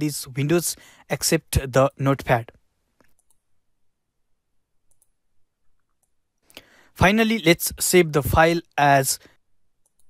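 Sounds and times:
faint computer mouse clicks: 3.0s - 3.4s.

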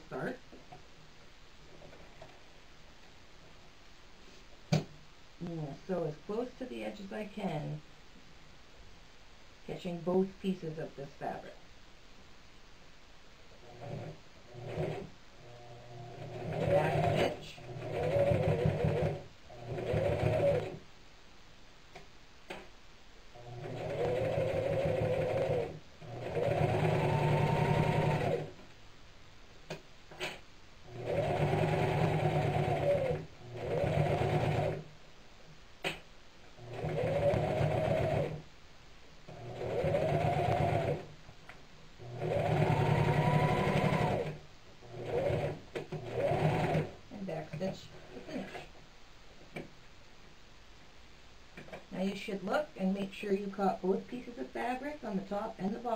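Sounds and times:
electric sewing machine stitching: 13.6s - 20.8s, 23.4s - 28.6s, 30.9s - 34.9s, 36.6s - 38.4s, 39.3s - 41.1s, 42.0s - 47.0s.

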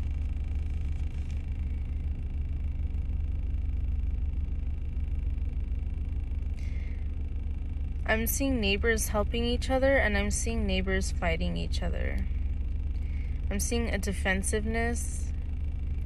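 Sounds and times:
car cabin low rumble: 0.0s - 16.0s.

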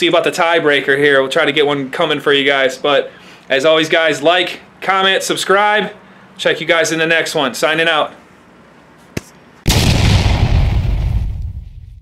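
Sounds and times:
explosion boom with deep rumble: 9.7s - 12.0s.

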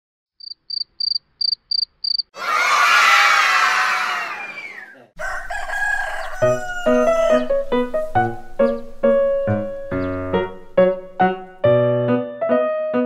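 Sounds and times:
children cheering: 2.4s - 7.6s
music: 6.0s - 13.0s.

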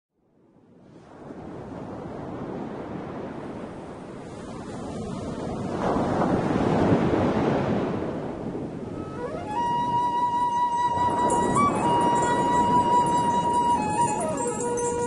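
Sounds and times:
sea waves washing: 0.9s - 15.0s.

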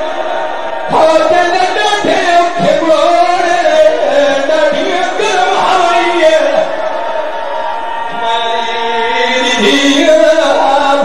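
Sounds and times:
man chanting: 0.9s - 6.8s, 8.1s - 11.0s.

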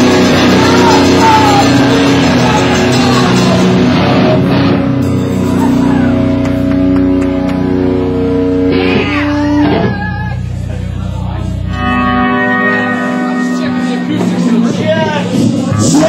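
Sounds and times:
people shouting: 0.0s - 4.4s, 5.3s - 6.3s, 8.8s - 10.6s
electric guitars ringing chords: 0.0s - 16.0s.

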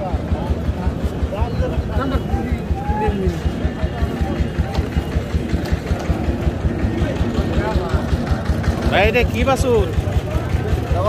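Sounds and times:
engine idling: 0.0s - 11.0s
faint voices: 0.0s - 11.0s.

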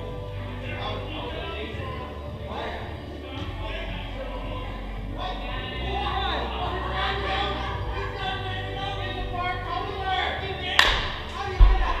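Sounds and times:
background music: 0.0s - 12.0s
chatter: 0.0s - 12.0s.

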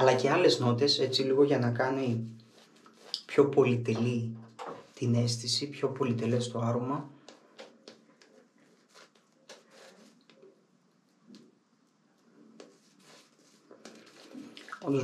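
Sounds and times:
shaving brush squishing lather: 2.4s - 3.4s, 7.6s - 10.5s, 12.6s - 15.0s.

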